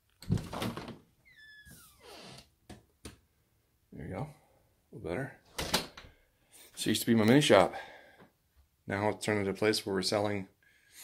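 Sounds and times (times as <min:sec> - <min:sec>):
high squeak falling in pitch: 0:01.3 - 0:02.2.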